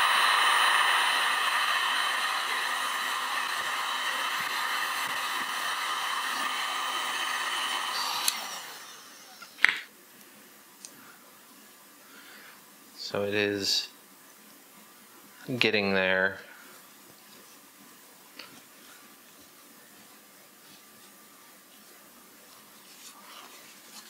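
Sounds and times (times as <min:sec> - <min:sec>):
fan winding down: 0:00.0 - 0:09.6
heat gun blowing: 0:00.0 - 0:09.7.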